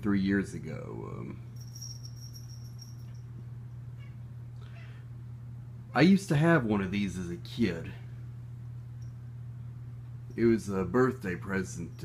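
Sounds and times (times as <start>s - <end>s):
low background hum: 0.0s - 12.0s
thin high whine: 1.2s - 4.0s.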